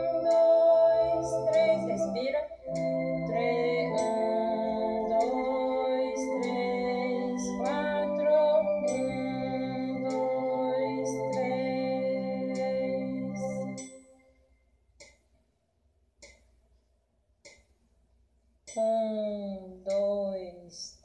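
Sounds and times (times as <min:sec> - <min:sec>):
electronic organ playing a hymn: 0:00.0 - 0:13.9
metronome ticks: 0:00.0 - 0:14.1, 0:15.0 - 0:15.3, 0:16.2 - 0:16.5, 0:17.4 - 0:17.8, 0:18.6 - 0:21.0.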